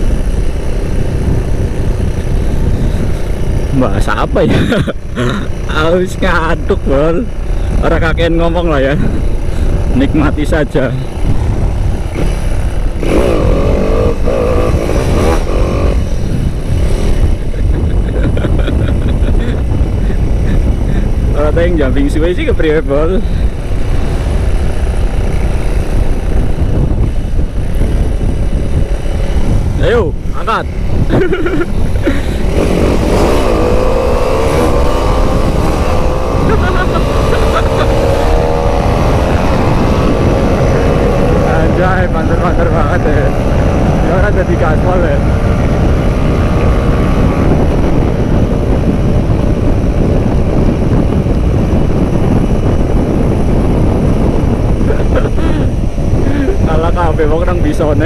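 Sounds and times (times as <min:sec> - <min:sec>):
motorcycle engine running: 0:00.0 - 0:58.0
wind buffeting microphone: 0:00.0 - 0:58.0.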